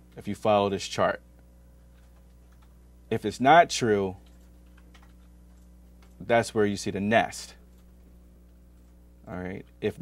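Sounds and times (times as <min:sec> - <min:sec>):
low electrical hum: 0:00.0 - 0:10.0
keyboard typing clicks: 0:01.9 - 0:02.8, 0:04.2 - 0:06.2.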